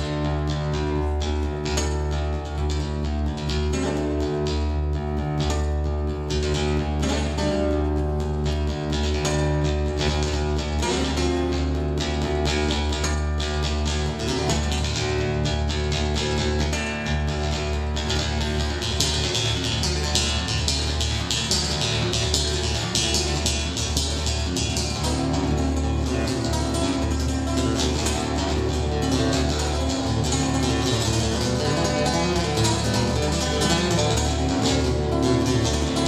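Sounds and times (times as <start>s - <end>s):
fingerpicked acoustic guitar: 0.0s - 36.0s.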